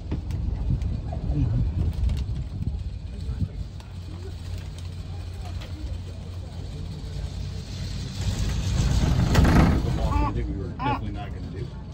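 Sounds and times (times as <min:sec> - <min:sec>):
wind noise: 0:00.0 - 0:04.4
cable car low rumble: 0:00.0 - 0:11.9.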